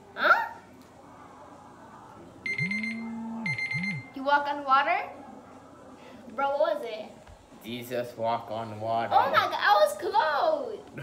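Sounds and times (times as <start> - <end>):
rapid electronic beeping: 2.5 - 4.1.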